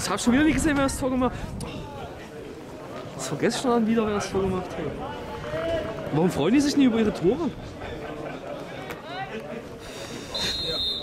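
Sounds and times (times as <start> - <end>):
referee's whistle blast: 10.3 - 11.0.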